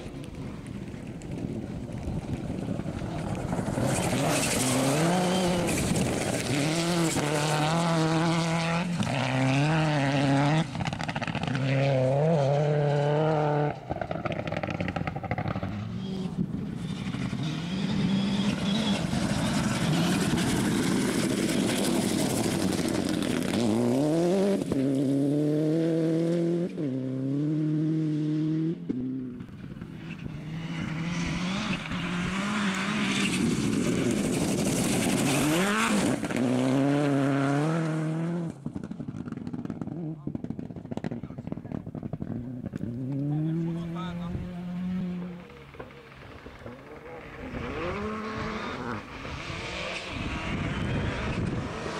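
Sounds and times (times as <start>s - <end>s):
rally car engine at full throttle: 0.0s - 51.9s.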